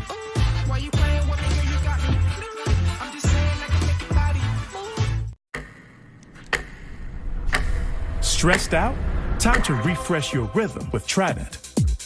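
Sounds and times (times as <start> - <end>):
sharp ticks: 5.6 - 7.9
low rumble: 6.1 - 10.6.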